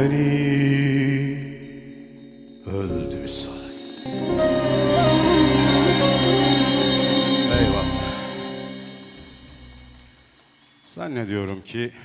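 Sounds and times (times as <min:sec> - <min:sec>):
folk band closing chord: 0:04.1 - 0:10.1.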